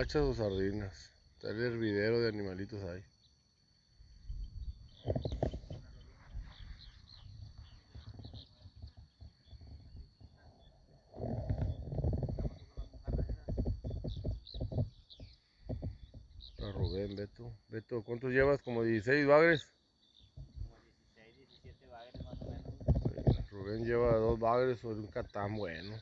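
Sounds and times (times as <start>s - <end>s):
faint bird chirps: 0.0s - 26.0s
high insect drone: 0.0s - 26.0s
wind buffeting microphone: 4.2s - 10.4s, 11.1s - 17.1s, 22.2s - 25.2s.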